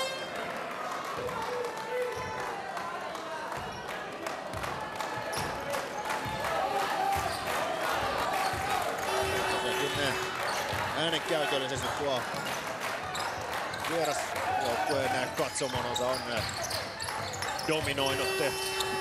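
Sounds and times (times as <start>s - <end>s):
crowd voices: 0.0s - 19.0s.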